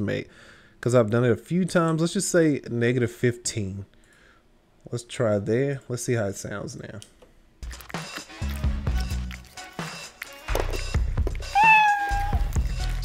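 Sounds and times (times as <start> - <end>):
background music with low beat: 7.6 - 13.0
eating clicks and crunches: 7.6 - 13.0
cat meowing: 11.4 - 12.5.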